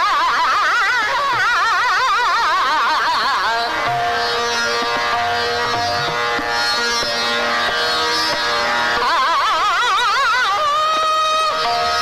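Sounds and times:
drone: 0:00.0 - 0:12.0.

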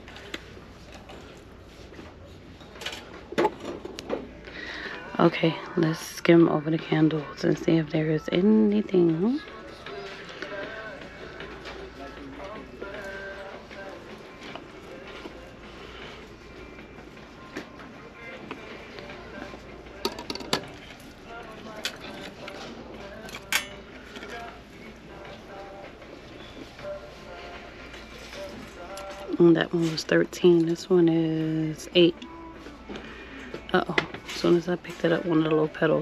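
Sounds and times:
faint music: 0:00.0 - 0:36.0.

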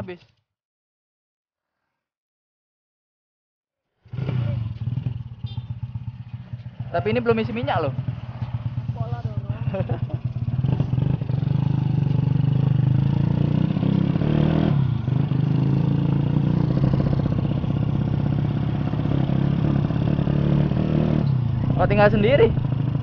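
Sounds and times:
motorcycle engine running: 0:04.1 - 0:23.0.

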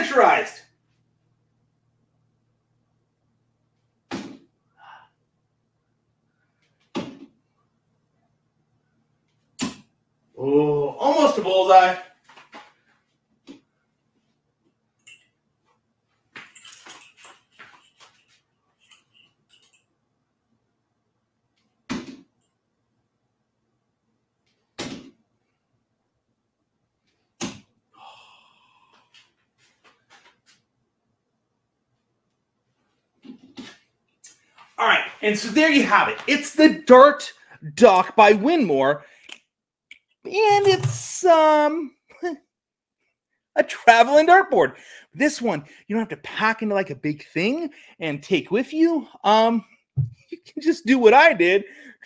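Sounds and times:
darts hitting dartboard: 0:04.1 - 0:04.5, 0:06.9 - 0:07.3, 0:21.9 - 0:22.3, 0:24.8 - 0:25.2
darts striking dartboard: 0:04.1 - 0:04.5.

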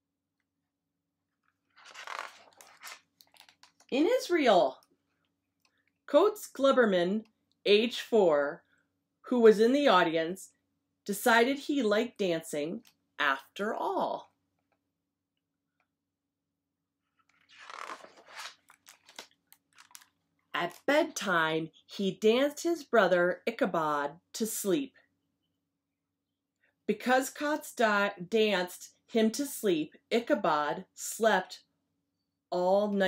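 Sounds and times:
book pages turning: 0:01.4 - 0:03.9, 0:17.1 - 0:20.2.

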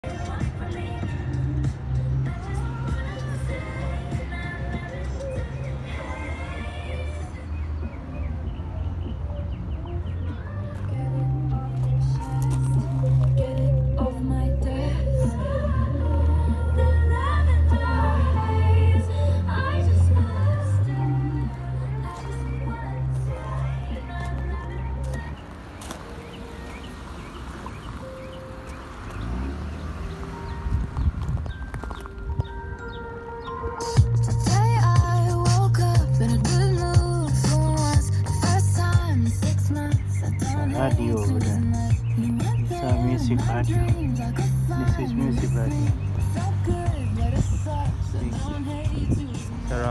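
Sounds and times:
music from outdoor speaker: 0:00.0 - 0:49.9
footsteps crunching on gravel: 0:11.7 - 0:13.8, 0:23.1 - 0:27.2, 0:28.6 - 0:32.6
music with bass beat: 0:33.8 - 0:49.9.

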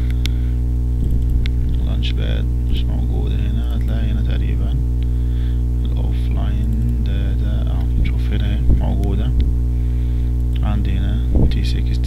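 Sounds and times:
electrical mains hum: 0:00.0 - 0:12.0.

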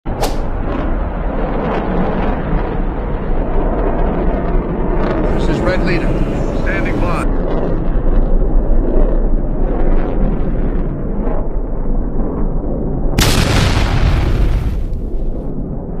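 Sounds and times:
fighter jets roaring: 0:05.2 - 0:07.3
loud explosion: 0:13.2 - 0:15.4.

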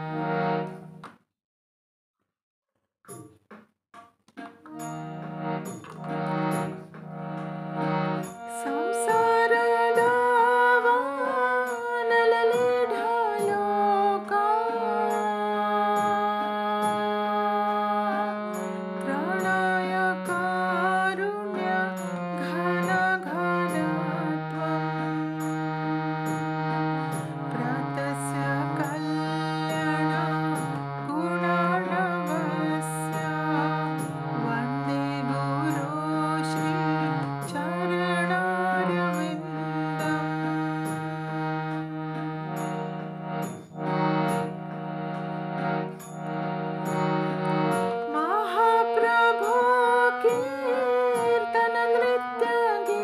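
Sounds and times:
harmonium playing chords: 0:00.0 - 0:01.0, 0:04.7 - 0:53.0
person singing: 0:07.8 - 0:42.5, 0:47.4 - 0:53.0.

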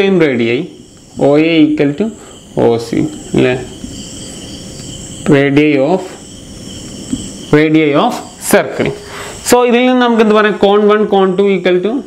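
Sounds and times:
person speaking: 0:00.0 - 0:04.0, 0:07.5 - 0:12.0
crickets chirring: 0:00.0 - 0:12.0.

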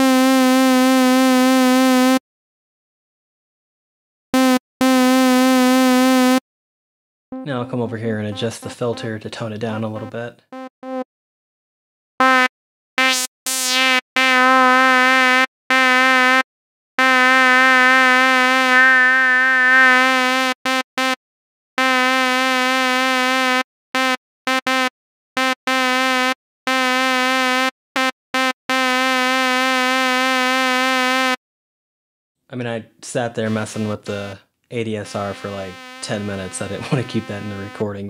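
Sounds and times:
reedy synthesizer note: 0:07.3 - 0:11.0, 0:17.0 - 0:21.2, 0:33.5 - 0:38.0.

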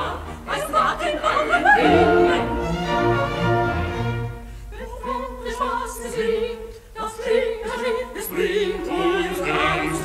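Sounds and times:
orchestra with bowed strings: 0:01.6 - 0:05.2.

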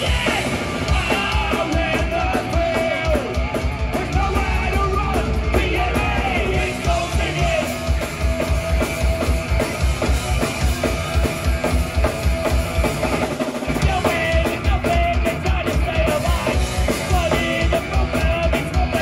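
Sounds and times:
shouted vocals: 0:00.0 - 0:07.8
punk band playing: 0:00.0 - 0:19.0.

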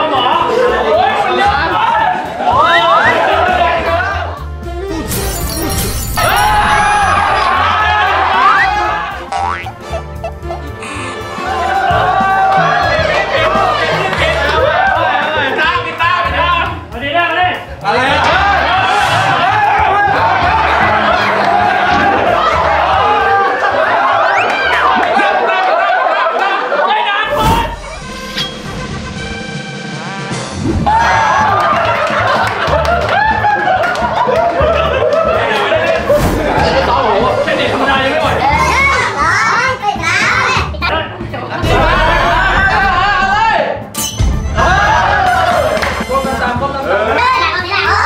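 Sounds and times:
people laughing loudly: 0:00.0 - 0:04.7, 0:06.3 - 0:16.0, 0:17.9 - 0:29.3, 0:30.8 - 0:39.2, 0:40.9 - 0:43.6, 0:44.6 - 0:48.0
background music: 0:00.0 - 0:48.0.

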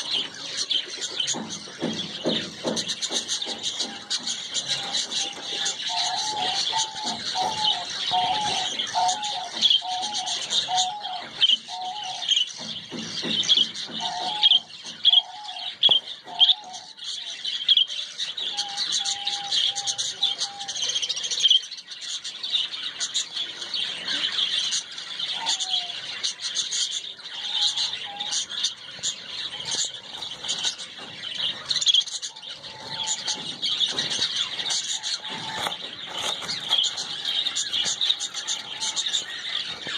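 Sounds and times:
small birds chirping: 0:00.0 - 0:39.9.

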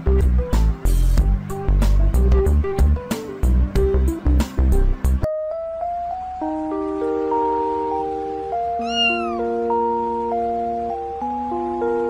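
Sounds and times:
background music of held notes: 0:00.0 - 0:12.0
cat meowing: 0:08.8 - 0:09.5.

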